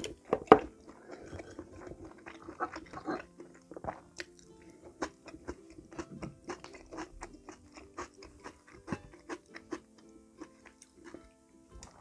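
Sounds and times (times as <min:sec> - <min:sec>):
person chewing food: 0:00.0 - 0:12.0.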